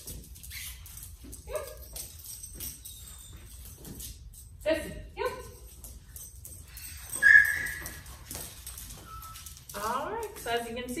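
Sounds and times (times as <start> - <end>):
dog whining: 7.1 - 8.1.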